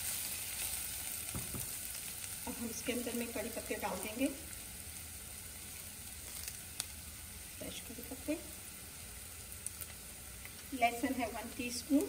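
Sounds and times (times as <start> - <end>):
onions sizzling in oil: 0.0 - 12.0.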